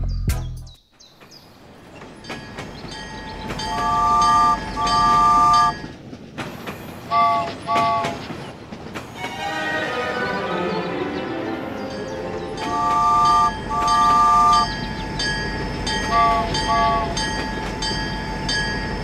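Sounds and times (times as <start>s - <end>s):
toy train chord whistle: 3.7s - 5.8s
background music: 9.2s - 15.3s.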